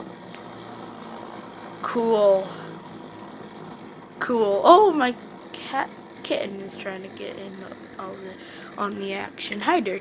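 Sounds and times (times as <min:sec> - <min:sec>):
toy gyroscope whirring: 0:00.0 - 0:10.0.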